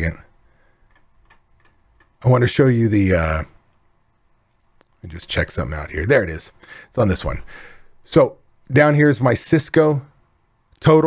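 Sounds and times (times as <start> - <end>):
person speaking: 0.0 - 0.4, 1.3 - 3.6, 4.6 - 11.0
computer mouse clicks: 0.8 - 2.2.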